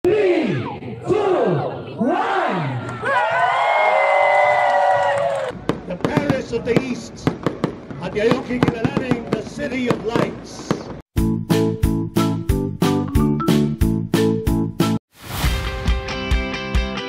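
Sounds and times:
crowd: 0.1s - 8.3s.

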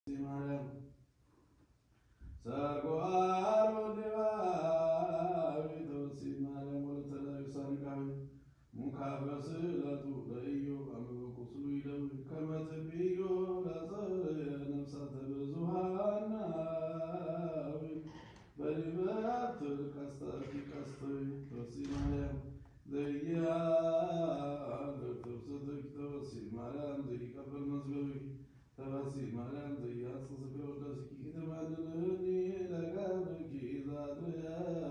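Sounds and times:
man singing liturgical chant: 0.1s - 0.8s, 2.4s - 34.9s
singer breathing: 18.0s - 18.6s.

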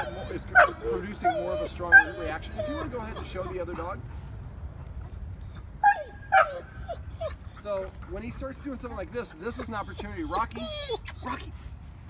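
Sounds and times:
dog whimpering: 0.0s - 3.9s, 5.0s - 7.9s, 9.0s - 11.5s.

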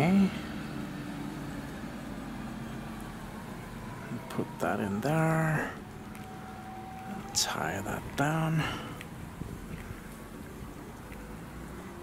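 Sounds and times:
wind rumbling on microphone: 5.8s - 11.2s.

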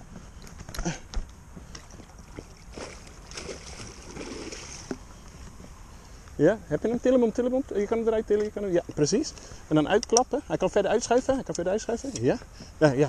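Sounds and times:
water sloshing and splashing: 1.7s - 5.1s.

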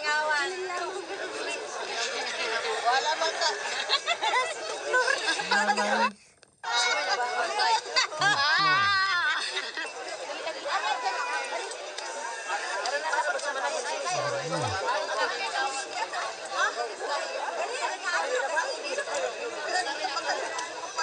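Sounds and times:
people chattering and calling: 0.0s - 21.0s.

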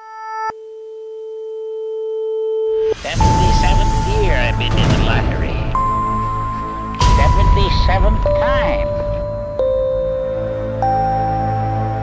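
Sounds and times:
steady electronic tone: 2.7s - 12.0s.

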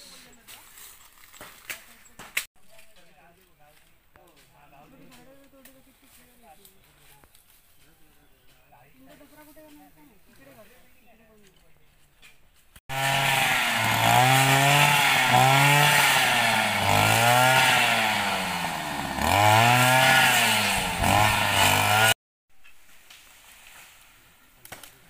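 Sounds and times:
brush cutter engine revving: 12.9s - 22.2s.

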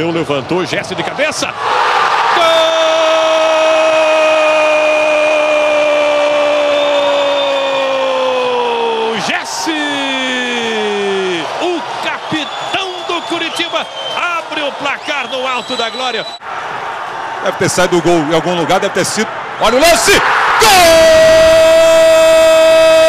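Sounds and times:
excited shouted commentary: 0.8s - 16.4s, 17.3s - 23.0s.

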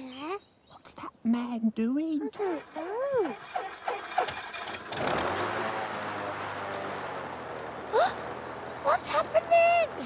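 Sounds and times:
light aircraft engine running: 2.3s - 10.0s.

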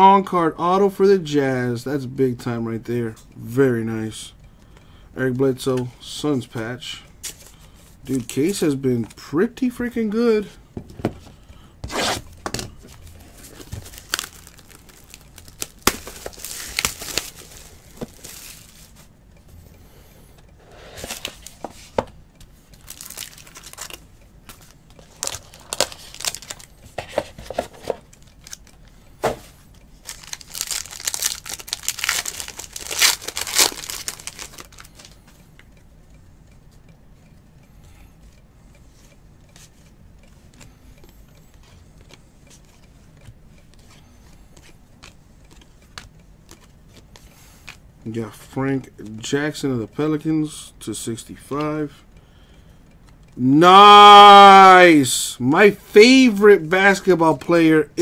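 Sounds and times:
cards rustling: 7.2s - 9.1s, 11.2s - 19.1s, 20.7s - 22.2s, 22.8s - 35.3s, 43.7s - 47.8s
card wrappers tearing and crinkling: 12.9s - 19.1s, 22.8s - 28.7s, 30.0s - 35.2s.

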